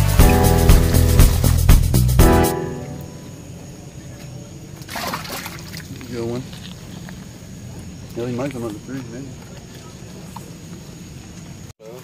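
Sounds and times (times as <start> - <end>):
water sloshing and splashing: 4.6 - 10.6.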